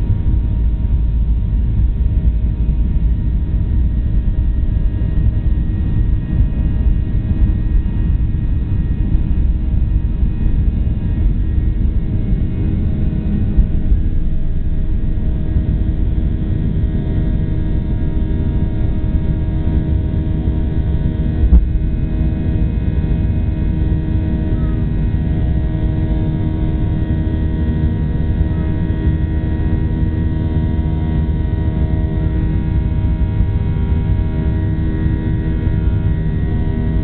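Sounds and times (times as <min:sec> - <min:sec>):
jet engines deep rumble: 0:00.0 - 0:37.0.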